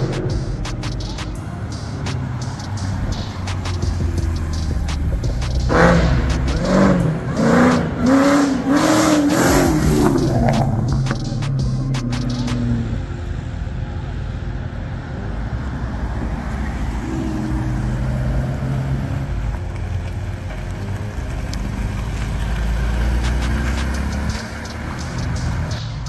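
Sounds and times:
sports car engines driving past: 0:00.0 - 0:26.0.

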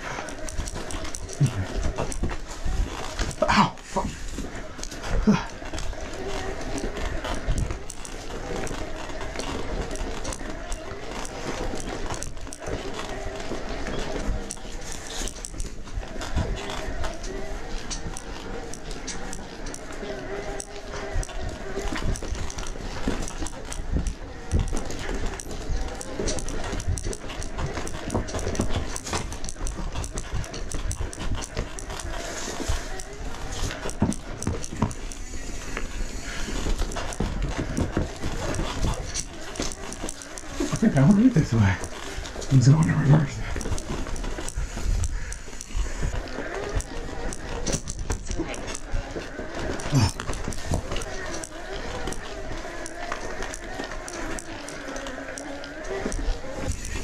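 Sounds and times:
bike tyres crunching on rocks: 0:00.0 - 0:57.0
electric motor whining: 0:00.0 - 0:57.0.

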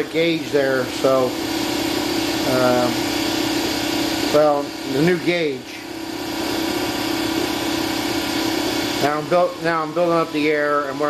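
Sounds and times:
air compressor humming: 0:00.0 - 0:11.0.

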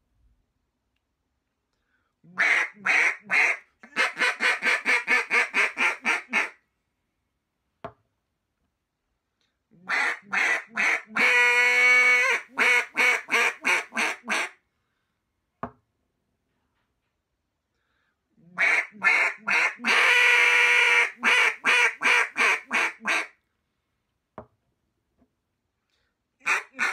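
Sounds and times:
duck call quacks: 0:02.3 - 0:06.6, 0:09.8 - 0:14.6, 0:18.5 - 0:23.4, 0:26.4 - 0:26.9.

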